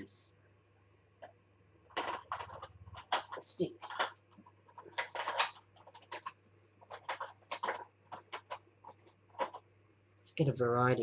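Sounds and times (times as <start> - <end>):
craft supplies rustling and clicking: 1.9 - 9.6.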